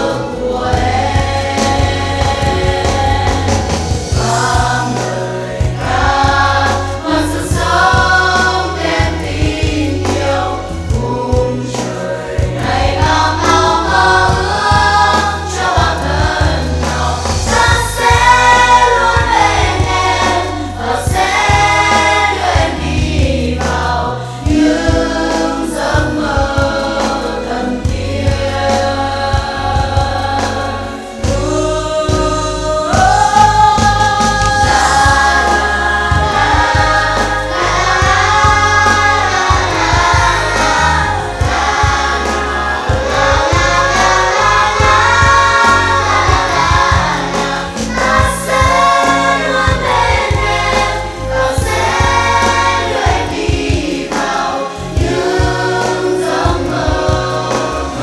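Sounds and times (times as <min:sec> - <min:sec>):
backing track with bass line: 0:00.0 - 0:58.0
choir of young voices singing: 0:00.0 - 0:58.0.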